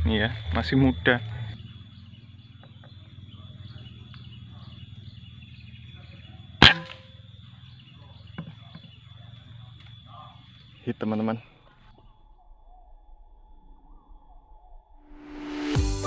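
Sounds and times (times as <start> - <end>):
air rifle shot: 6.6 - 7.1.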